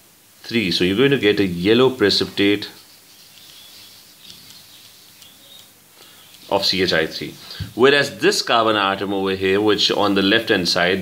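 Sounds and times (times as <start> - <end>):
faint background hiss: 0.0 - 11.0
stylus scratching on pen tablet: 2.2 - 8.2.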